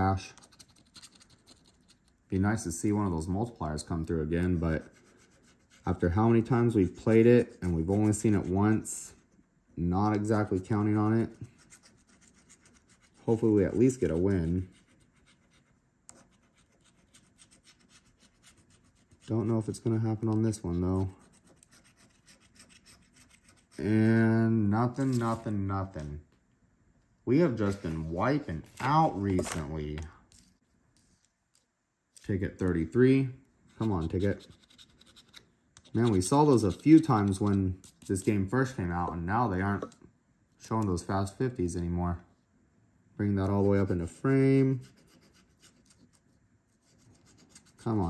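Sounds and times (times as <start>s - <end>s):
coin scratching lottery ticket: 33.8s - 38.2s.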